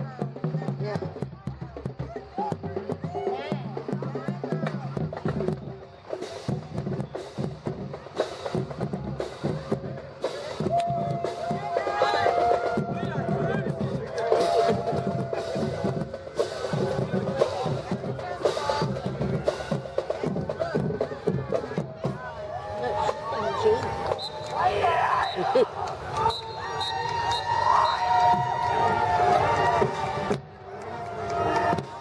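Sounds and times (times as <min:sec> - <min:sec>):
chatter of onlookers: 0:00.0 - 0:32.0
marching band drums: 0:00.0 - 0:32.0.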